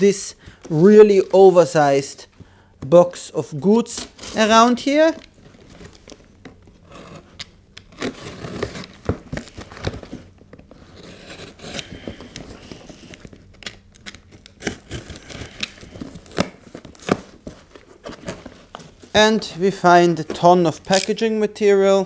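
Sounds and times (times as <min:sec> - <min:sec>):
box cutter slicing tape: 0:06.9 - 0:09.6, 0:10.9 - 0:12.0, 0:14.4 - 0:17.3.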